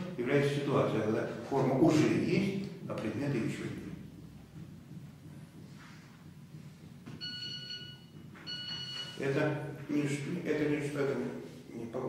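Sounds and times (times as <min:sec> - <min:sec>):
phone alert beeps: 0:07.2 - 0:09.2.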